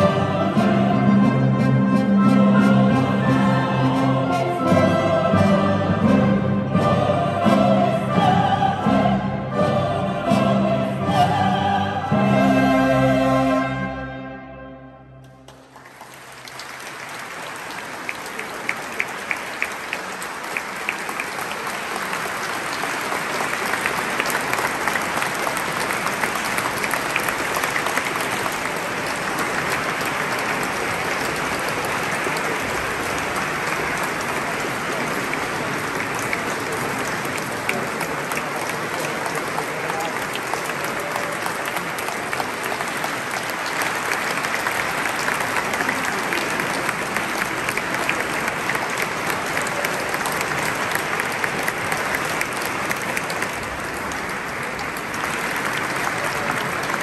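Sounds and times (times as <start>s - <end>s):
audience applauding: 15.2s - 57.0s.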